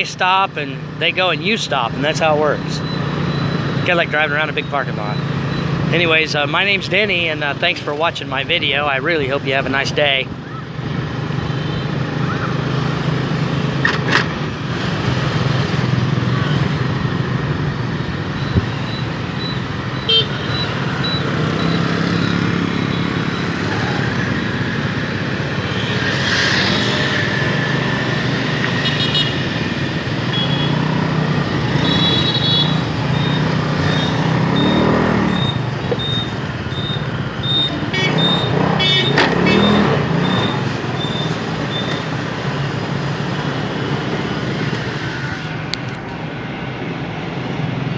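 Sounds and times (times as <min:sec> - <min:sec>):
street traffic: 0:00.0 - 0:47.9
wind: 0:00.0 - 0:47.9
high beep: 0:33.1 - 0:42.0.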